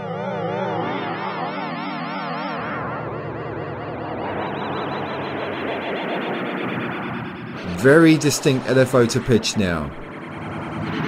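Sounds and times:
synth pad chord with vibrato: 3.0s - 11.0s.

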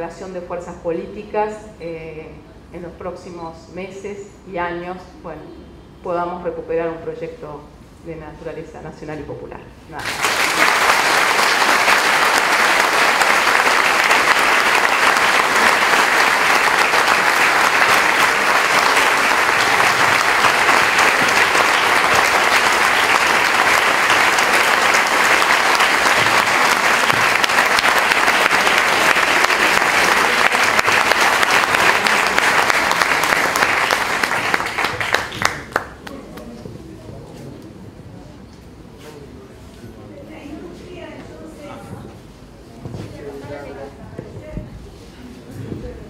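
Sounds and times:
audience applauding: 10.0s - 36.5s.

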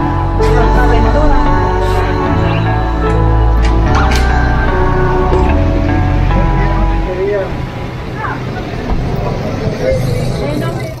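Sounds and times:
traffic running nearby: 2.3s - 11.0s
people talking: 6.4s - 11.0s.

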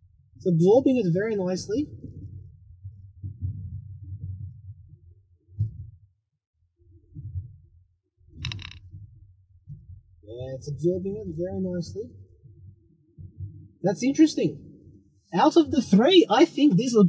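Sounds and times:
brief rattle: 8.4s - 8.8s.

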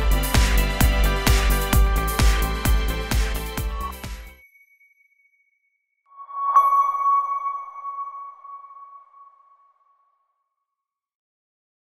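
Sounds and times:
ringing tone strike: 4.4s - 10.0s.

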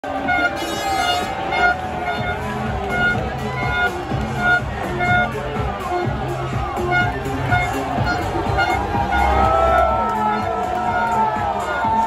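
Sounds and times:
street crowd voices: 0.0s - 12.0s
loud music with short repeated notes: 0.1s - 12.0s.

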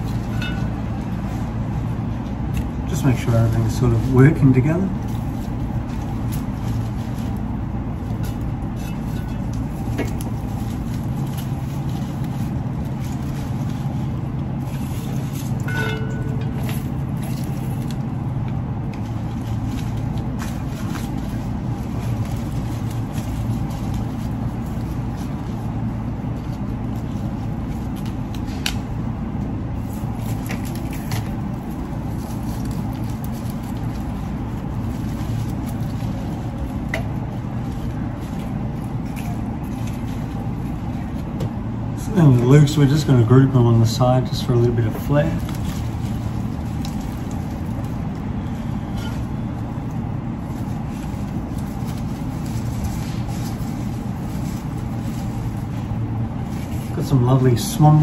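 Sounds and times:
faint clicks and rustles: 0.0s - 41.7s, 44.2s - 58.0s
steady low hum: 0.0s - 58.0s.

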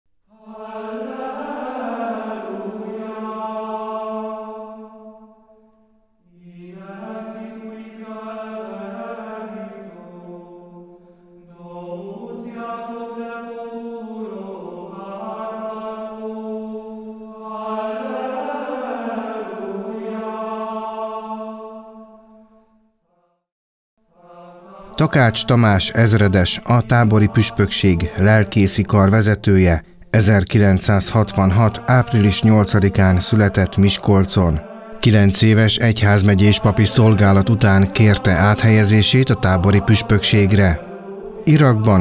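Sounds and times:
person chanting: 0.3s - 5.3s, 6.3s - 22.0s, 24.2s - 42.0s.

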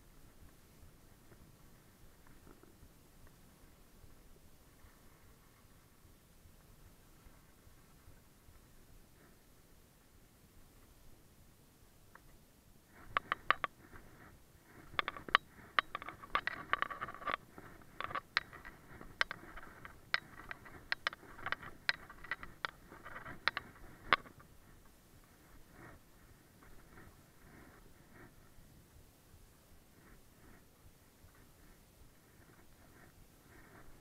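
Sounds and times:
sharp clicks and knocks: 13.0s - 26.0s.

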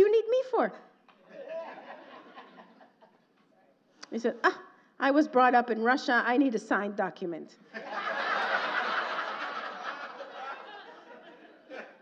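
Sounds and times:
audience laughing: 1.3s - 3.2s, 7.7s - 12.0s.

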